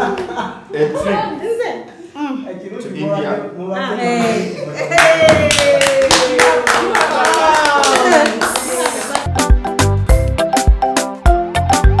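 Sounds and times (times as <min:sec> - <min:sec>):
group clapping: 0:04.8 - 0:09.6
person cheering: 0:04.9 - 0:09.1.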